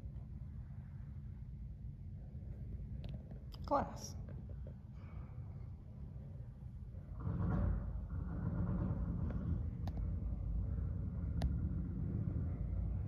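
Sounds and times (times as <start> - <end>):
low steady rumble: 0.0 - 13.0.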